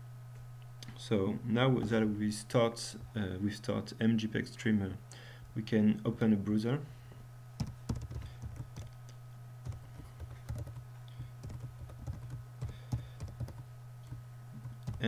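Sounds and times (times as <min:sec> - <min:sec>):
steady low hum: 0:00.0 - 0:15.0
typing on computer keyboard: 0:07.6 - 0:09.0, 0:09.6 - 0:10.8, 0:11.4 - 0:15.0.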